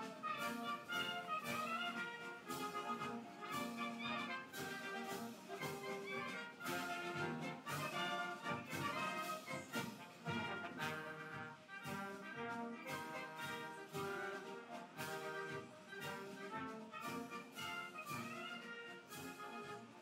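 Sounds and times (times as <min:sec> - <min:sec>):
orchestral music with brass: 0:00.0 - 0:20.0.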